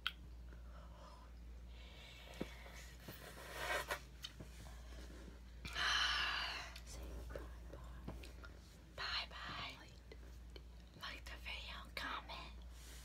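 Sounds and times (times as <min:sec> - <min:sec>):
woman whispering: 0:09.0 - 0:10.2, 0:11.0 - 0:12.7.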